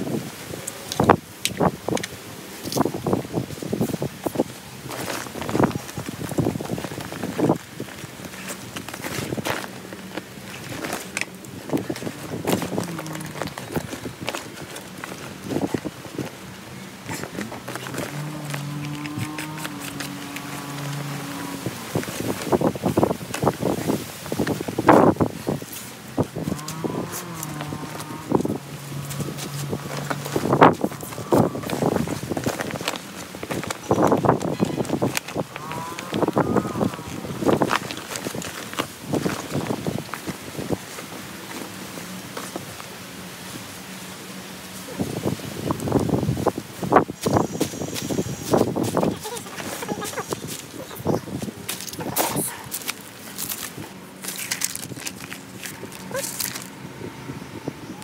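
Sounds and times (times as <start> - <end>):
vinyl crinkling and rustling: 0.0 - 56.9
low steady drone: 53.8 - 58.0.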